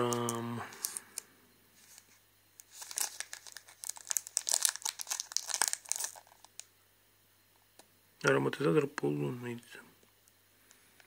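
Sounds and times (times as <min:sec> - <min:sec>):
plastic wrapper crinkling: 0:00.0 - 0:01.2, 0:01.8 - 0:06.7.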